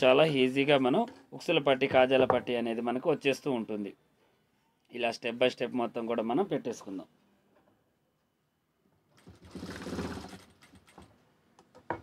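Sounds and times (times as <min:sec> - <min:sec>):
sewing machine running: 0:09.2 - 0:10.8.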